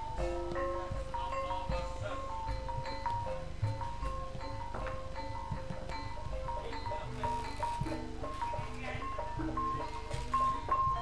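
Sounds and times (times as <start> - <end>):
gamelan metallophone melody: 0.0 - 11.0.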